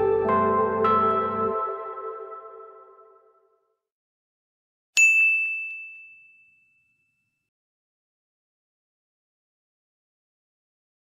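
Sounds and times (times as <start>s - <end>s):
bell-like ding: 5.0s - 7.5s.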